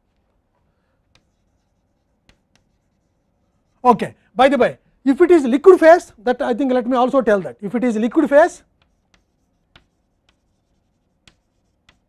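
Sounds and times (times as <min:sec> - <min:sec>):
chalk taps: 0:01.0 - 0:03.8, 0:08.6 - 0:12.0
chalk writing on blackboard: 0:01.0 - 0:03.9, 0:08.3 - 0:12.0.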